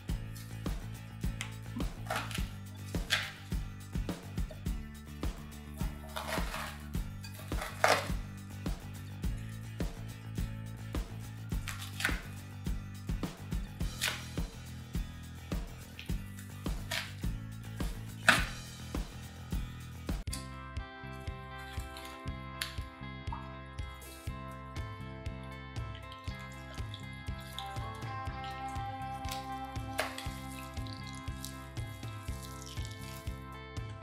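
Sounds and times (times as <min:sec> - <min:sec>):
background music with steady beat: 0:00.0 - 0:34.0.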